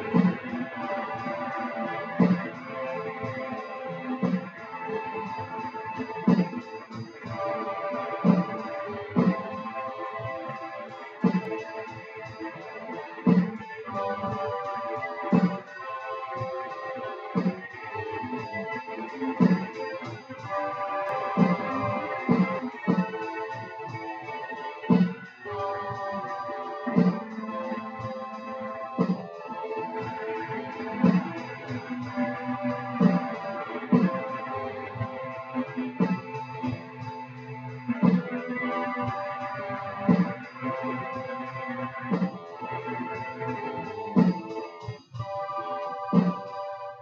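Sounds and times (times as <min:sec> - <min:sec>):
electronic drum beat: 0:00.0 - 0:46.6
electric guitar: 0:00.0 - 0:47.0
keyboard chords: 0:00.0 - 0:47.0.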